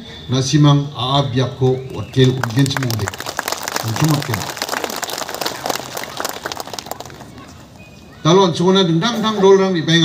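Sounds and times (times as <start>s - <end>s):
audience applauding: 1.9s - 7.7s.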